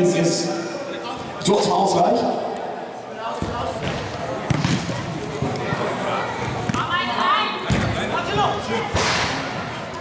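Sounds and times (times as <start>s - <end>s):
football kicked thud: 3.4s - 4.9s.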